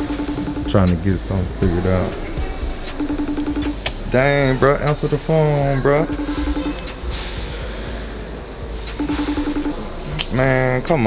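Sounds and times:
outgoing call ringing tone: 0:00.0 - 0:04.7, 0:05.3 - 0:07.7, 0:09.0 - 0:10.5
shop background noise: 0:00.0 - 0:11.0.

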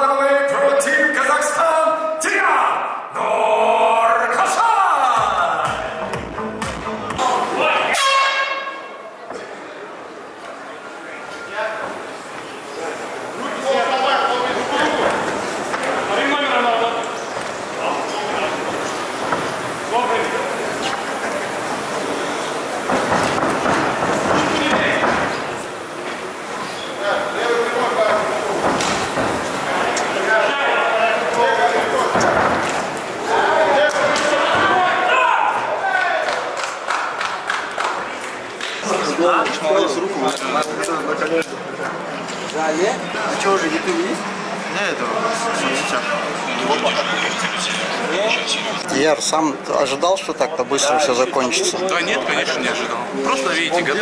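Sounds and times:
man's voice: 0:00.0 - 0:07.9
hum of the hall: 0:00.0 - 0:54.0
crowd shouting: 0:02.3 - 0:06.0, 0:07.2 - 0:09.1, 0:27.1 - 0:37.2.

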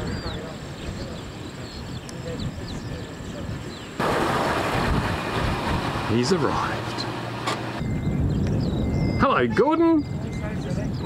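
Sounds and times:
vehicle engine rumble: 0:00.0 - 0:11.0
loud rushing noise: 0:04.0 - 0:07.8.

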